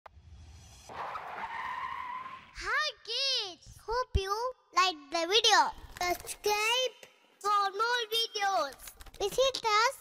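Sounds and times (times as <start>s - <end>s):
cartoon car skidding screech: 0.9s - 2.6s.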